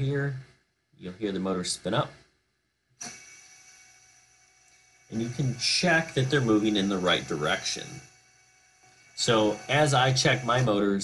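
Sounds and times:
drone motors whining: 3.0 - 11.0.

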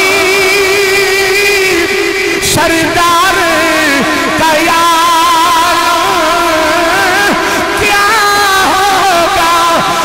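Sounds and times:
man chanting through a microphone: 0.0 - 10.0.

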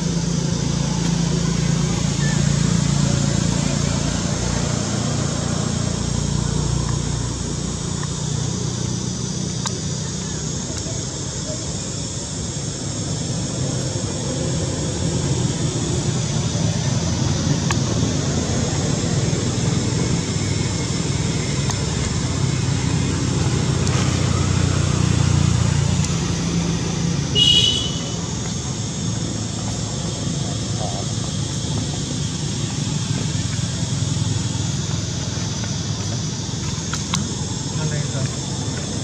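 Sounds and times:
outdoor background rumble: 0.0 - 39.0.

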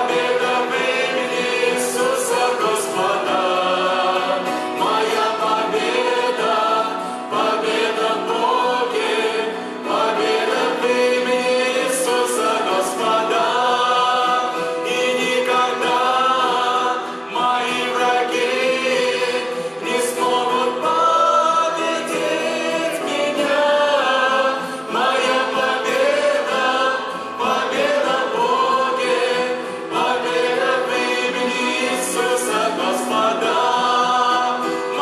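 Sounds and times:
grand piano: 0.0 - 35.0
group singing in harmony: 0.0 - 35.0.

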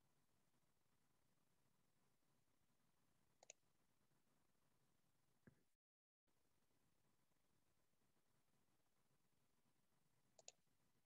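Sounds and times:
computer mouse clicks: 3.4 - 3.6, 10.4 - 10.6.

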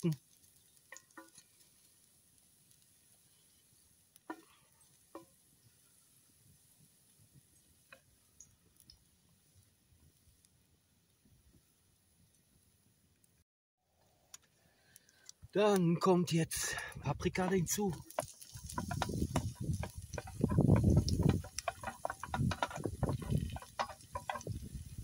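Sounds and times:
garlic sizzling in oil: 0.0 - 10.2, 17.3 - 25.0.

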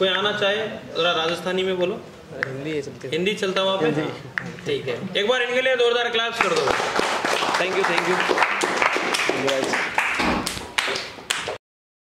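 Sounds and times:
group applause: 6.4 - 11.6.

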